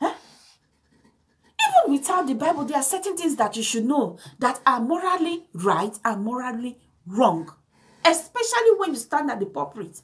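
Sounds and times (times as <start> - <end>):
woman speaking: 0.0 - 0.3, 1.6 - 10.0.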